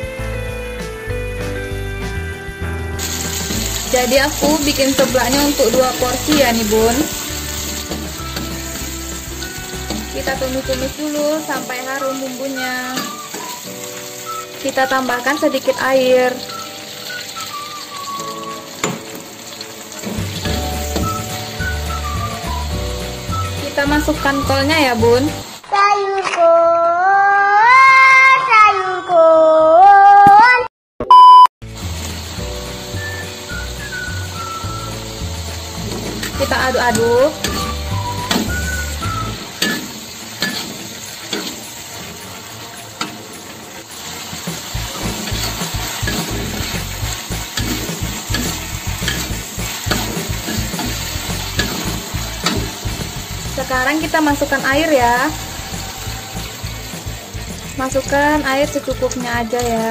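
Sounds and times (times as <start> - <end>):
soft background music: 0.0 - 25.6, 31.8 - 59.9
food frying in a wok: 1.6 - 25.9, 31.6 - 59.9
spice paste sizzling in oil: 2.8 - 25.6, 31.6 - 59.9
loud test-pattern beep: 31.0 - 31.5
metal spatula stirring in wok: 39.4 - 53.7.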